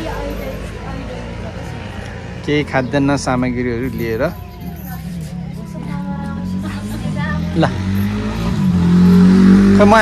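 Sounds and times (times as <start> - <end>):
engine humming: 0.0 - 10.0.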